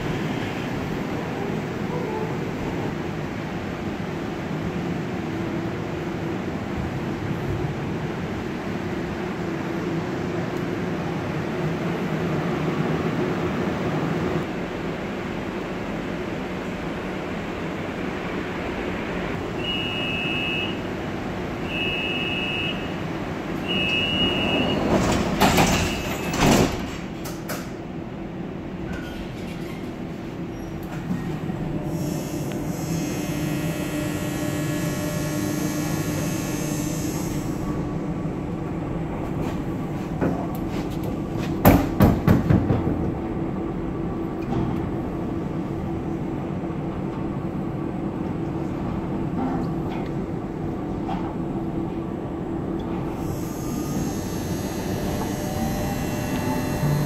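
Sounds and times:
door-warning beeps: 0:23.7 - 0:24.9
sliding doors closing with knocks: 0:24.2 - 0:27.8, 0:40.2 - 0:43.2
onboard equipment humming: 0:53.1 - 0:57.0
drive high whine: 0:53.3 - 0:57.0.

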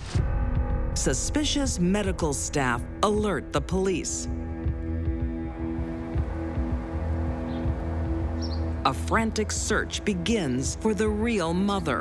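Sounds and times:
sustained low music notes: 0:00.0 - 0:12.0
low repeating pulse: 0:00.2 - 0:11.5.

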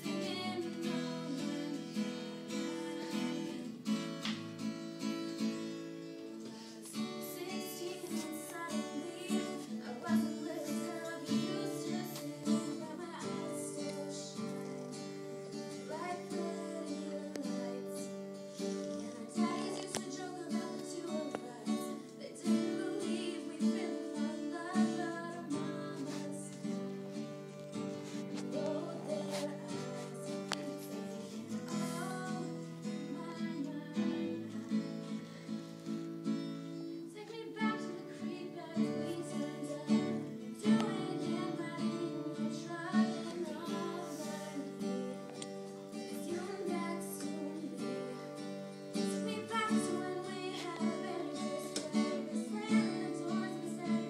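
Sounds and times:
woman singing: 0:00.0 - 0:04.3, 0:05.3 - 0:35.2, 0:36.8 - 0:54.0
strummed acoustic guitar: 0:00.0 - 0:54.0.

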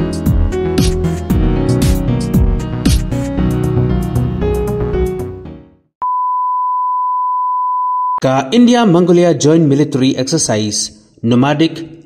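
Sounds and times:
intro music: 0:00.0 - 0:05.8.

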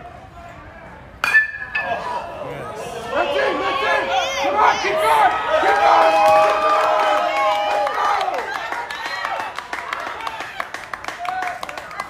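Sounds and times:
metal bat hitting ball: 0:01.2 - 0:02.1.

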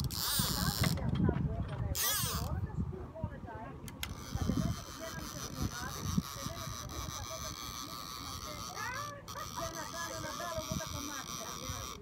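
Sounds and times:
distant people chattering: 0:00.0 - 0:12.0
wind rumble on microphone: 0:00.0 - 0:12.0.

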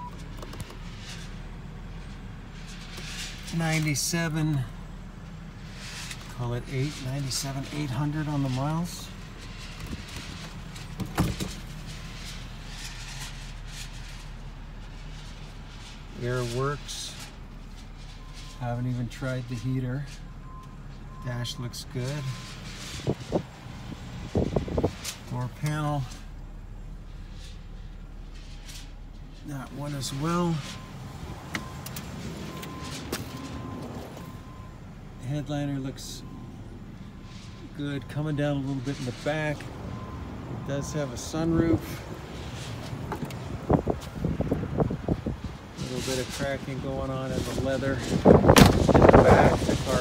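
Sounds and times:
car engine idling hum: 0:00.0 - 0:50.0
sharp engine knocks: 0:48.2 - 0:49.7.

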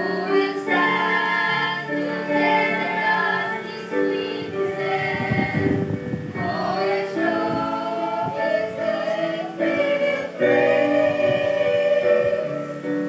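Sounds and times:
choir singing gospel song: 0:00.0 - 0:13.0.

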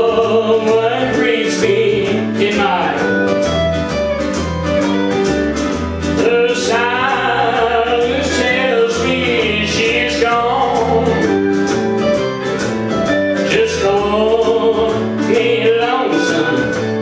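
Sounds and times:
person singing country song: 0:00.0 - 0:03.6, 0:05.7 - 0:17.0
bass line: 0:00.0 - 0:17.0
plucked guitar: 0:00.0 - 0:17.0.

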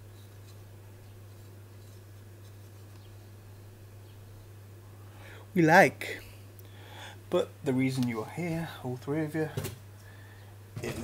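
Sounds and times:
vinyl figure handling ticks and rubs: 0:00.0 - 0:03.3
low electrical hum: 0:00.0 - 0:11.0.

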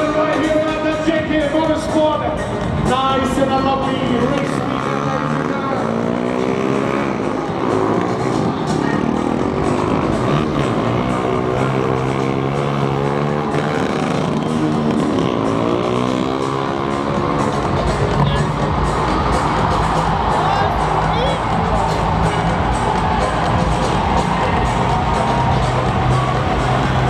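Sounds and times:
motorcycle engines revving hard: 0:00.0 - 0:27.0.

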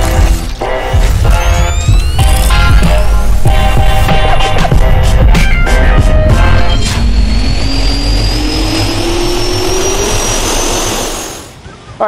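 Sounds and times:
jet turbine spooling up: 0:05.7 - 0:11.6.

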